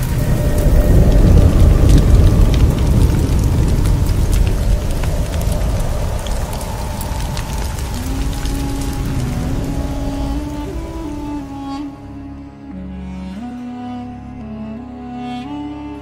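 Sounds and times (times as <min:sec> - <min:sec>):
deep rushing rumble with crackles: 0:00.0 - 0:12.1.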